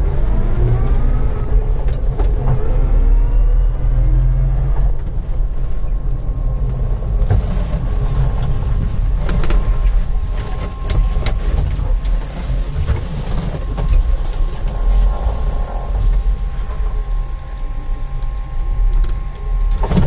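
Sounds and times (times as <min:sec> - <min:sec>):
low rumble of running gear: 0:00.0 - 0:20.0
transmission whine: 0:00.0 - 0:20.0.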